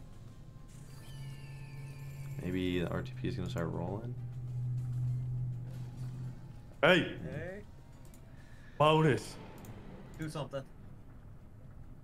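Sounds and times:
low steady drone: 0.0 - 12.0.

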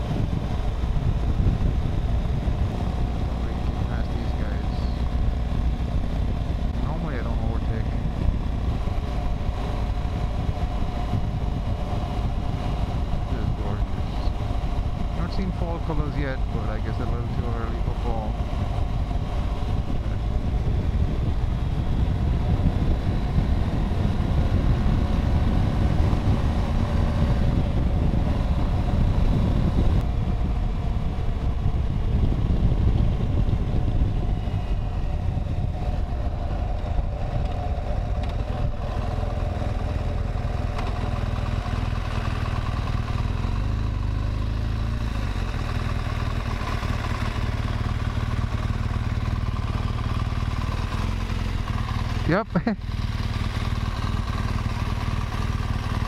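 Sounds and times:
wind noise on microphone: 0.0 - 50.4
motorcycle engine running: 0.0 - 56.0.

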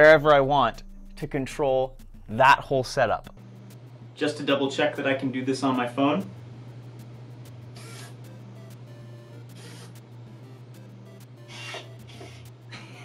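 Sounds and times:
low hum: 0.0 - 13.0
soft background music: 0.0 - 13.0.

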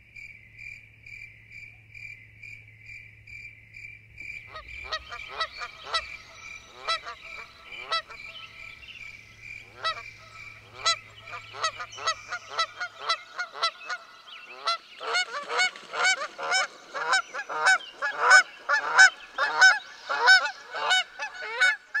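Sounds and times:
geese honking: 4.5 - 22.0.

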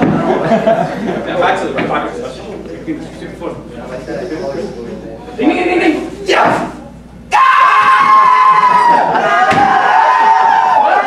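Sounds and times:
high-pitched scream: 7.3 - 11.0.

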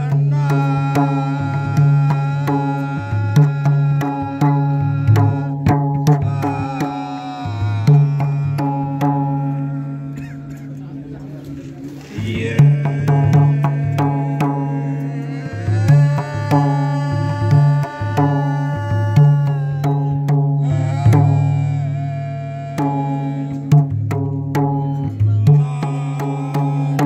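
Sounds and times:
men singing a hymn: 0.0 - 5.5, 6.2 - 10.4, 12.1 - 23.7, 24.9 - 27.0
hand drum beating: 0.0 - 21.8, 22.5 - 27.0.

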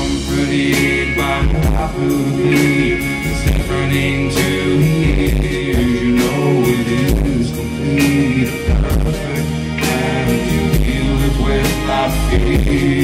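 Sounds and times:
man singing: 0.0 - 13.0
rock band playing: 0.0 - 13.0.

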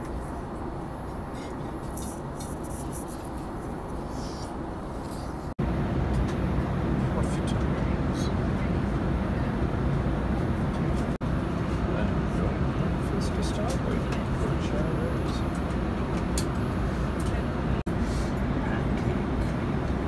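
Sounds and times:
airliner cabin engine drone: 0.0 - 20.0.

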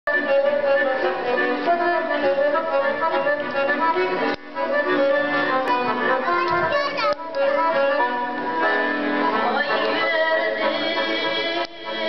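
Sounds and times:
accordion playing folk melody: 0.1 - 12.0.

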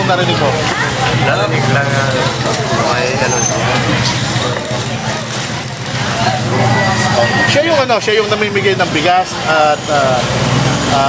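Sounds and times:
voices in background: 0.0 - 11.0.

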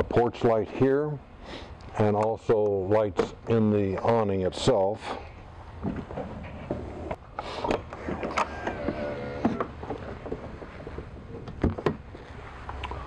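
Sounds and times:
electric motor whirring: 7.9 - 9.7.

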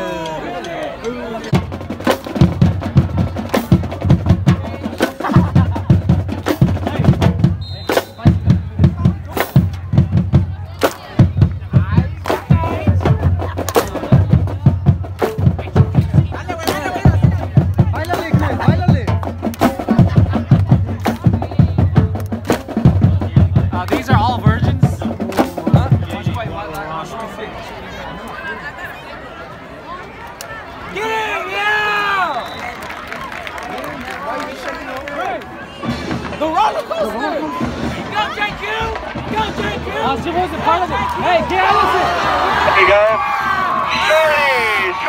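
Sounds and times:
drumline playing drum cadence: 0.0 - 26.9, 35.6 - 44.9
people's voices: 0.0 - 45.0.

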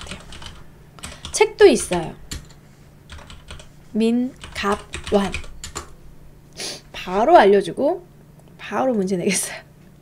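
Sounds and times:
computer keyboard keystrokes: 0.0 - 3.7, 4.4 - 5.9.

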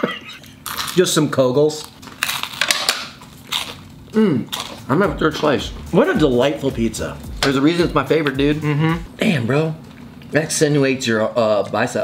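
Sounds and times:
pizza crust crunching: 0.5 - 4.8.

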